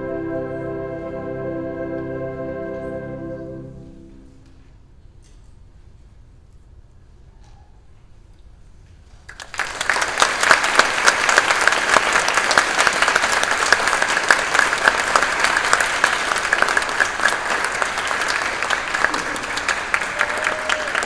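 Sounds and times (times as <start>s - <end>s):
audience applauding: 9.3s - 21.0s.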